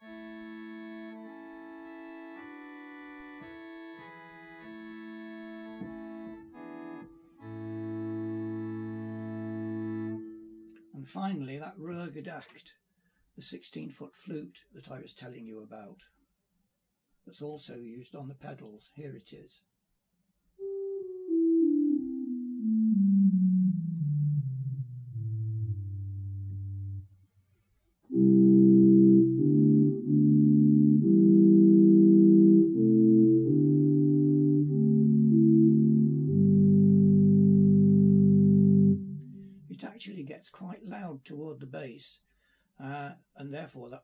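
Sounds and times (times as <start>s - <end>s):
pipe organ playing slow chords: 0.0s - 10.9s, 20.6s - 27.1s, 28.1s - 40.0s.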